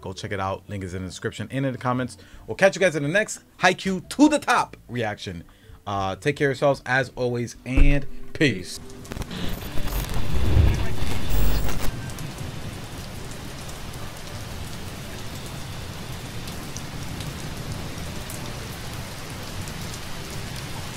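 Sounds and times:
steady rain: 0:08.4 - 0:20.9
loud low rumble: 0:09.4 - 0:11.9.

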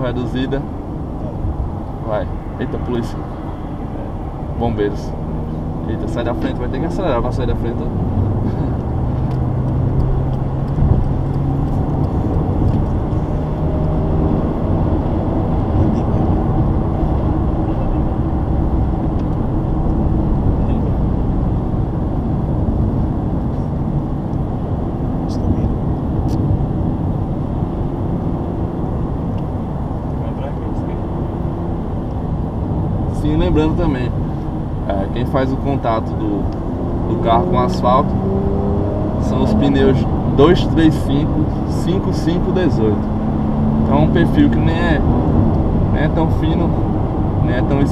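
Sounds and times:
car engine running: 0:00.0 - 0:47.9
tyre hum and road noise: 0:00.0 - 0:47.9.

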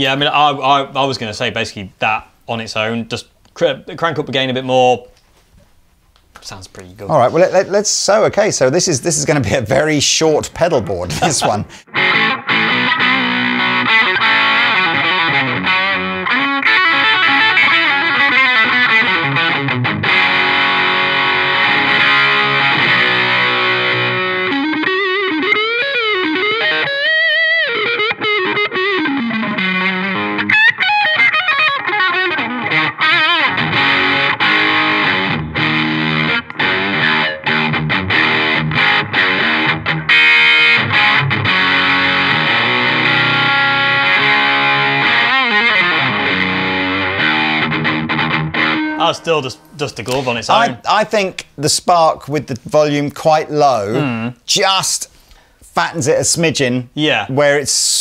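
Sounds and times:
distorted electric guitar riffs: 0:11.2 - 0:51.2.

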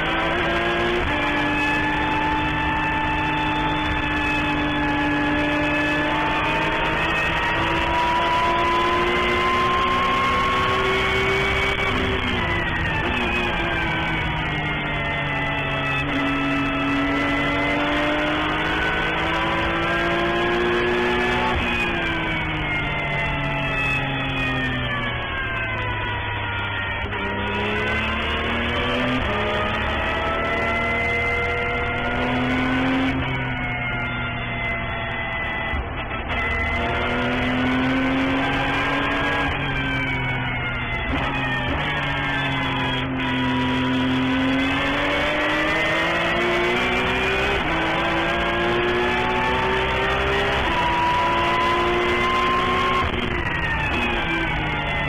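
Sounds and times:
race car engine revving: 0:00.0 - 0:34.0, 0:34.6 - 0:55.0.

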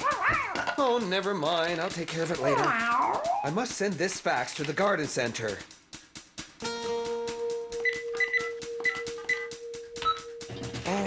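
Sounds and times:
cartoon music with fast beat: 0:02.3 - 0:04.1, 0:04.9 - 0:11.0
fax keypad beeping: 0:07.8 - 0:10.5.

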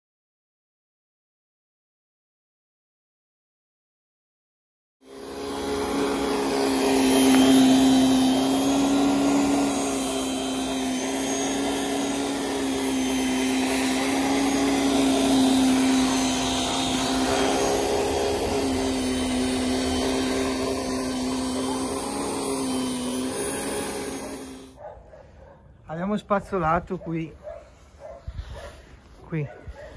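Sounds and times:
rotary brush motor hum: 0:05.0 - 0:24.8.

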